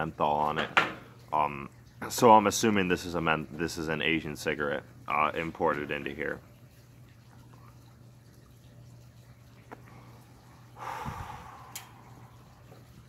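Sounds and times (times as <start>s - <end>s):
faint steady hum: 0.0s - 13.0s
smoker exhaling: 10.8s - 12.4s.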